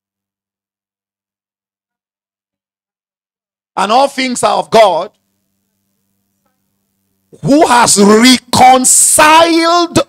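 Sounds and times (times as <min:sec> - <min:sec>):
man speaking through a microphone: 0:03.8 - 0:05.2, 0:07.4 - 0:10.0
faint electrical hum: 0:03.8 - 0:10.0.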